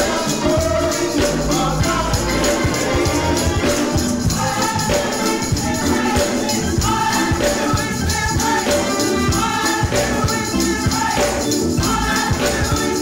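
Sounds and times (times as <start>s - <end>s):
gospel choir singing: 0.0s - 13.0s
percussion beat: 0.0s - 13.0s.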